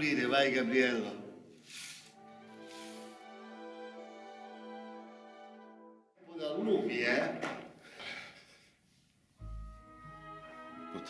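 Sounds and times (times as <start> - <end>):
broom sweeping floor: 1.6 - 3.2.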